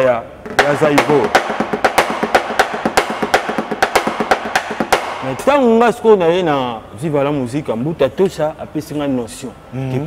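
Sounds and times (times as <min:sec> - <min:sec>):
drum kit playing: 0:00.4 - 0:05.4.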